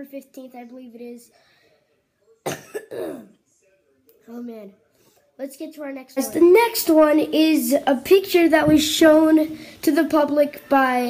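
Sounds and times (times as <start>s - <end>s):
boy coughing: 2.5s - 3.3s.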